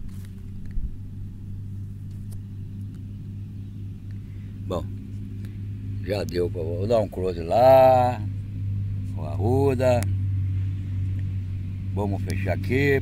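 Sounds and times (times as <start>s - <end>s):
low hum of running motor: 0.0s - 13.0s.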